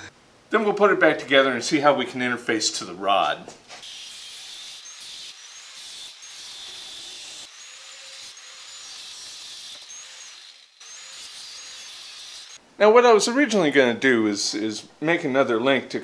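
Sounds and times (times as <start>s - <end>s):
angle grinder cutting steel rod: 3.8s - 12.6s.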